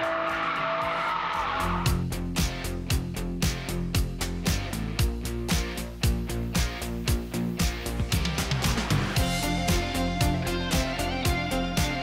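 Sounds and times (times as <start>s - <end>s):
music with a beat: 1.8s - 12.0s.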